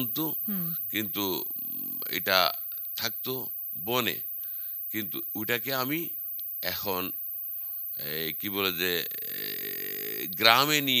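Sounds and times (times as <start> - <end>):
man holding low vowel sound: 0.0 - 0.8, 9.0 - 10.5
man talking: 0.0 - 4.2, 5.0 - 7.2, 8.0 - 9.4, 10.2 - 11.0.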